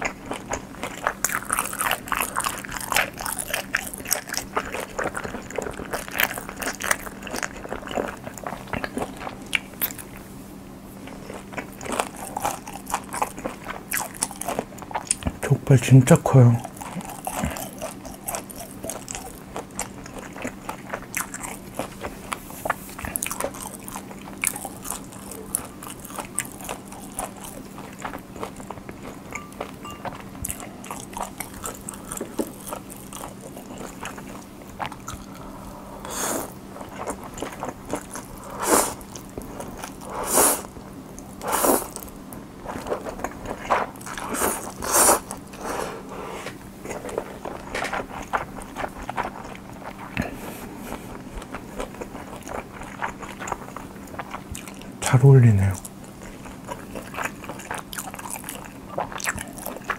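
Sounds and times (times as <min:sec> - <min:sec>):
wet chewing with mouth clicks: 0:00.0 - 0:10.3, 0:11.0 - 0:15.5, 0:16.3 - 0:45.8, 0:46.4 - 0:59.9
faint steady hum: 0:00.0 - 0:59.9
loud noodle slurps: 0:38.6 - 0:39.0, 0:40.1 - 0:40.7, 0:41.4 - 0:42.0, 0:44.2 - 0:46.5.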